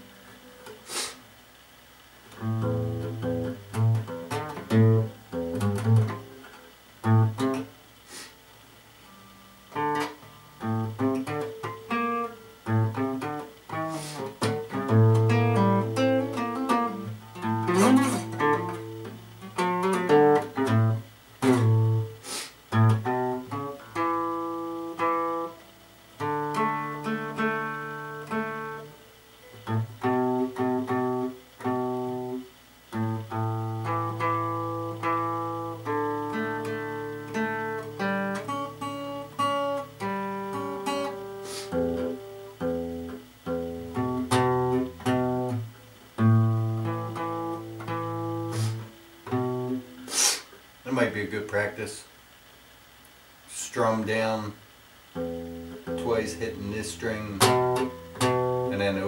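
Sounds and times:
fingerpicked acoustic guitar: 0:00.0 - 0:52.2, 0:52.8 - 0:59.0.

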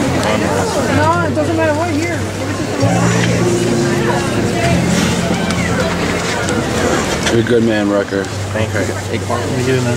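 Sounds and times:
crowd voices: 0:00.0 - 0:09.9.

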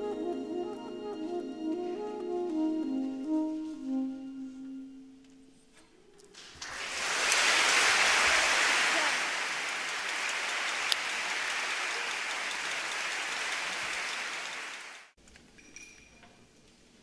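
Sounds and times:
audience applauding: 0:06.4 - 0:15.2.

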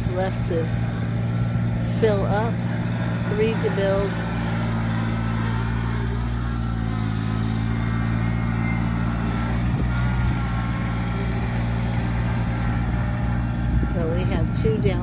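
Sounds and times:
tractor diesel engine running: 0:00.0 - 0:15.0.

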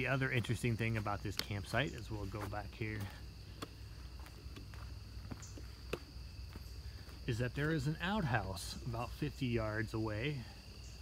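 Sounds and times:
footsteps on dry leaves: 0:00.0 - 0:08.4
high-pitched insect chorus: 0:00.0 - 0:11.0.

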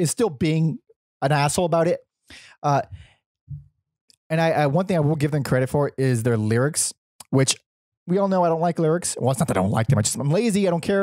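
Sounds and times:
man murmuring: 0:09.2 - 0:10.3.

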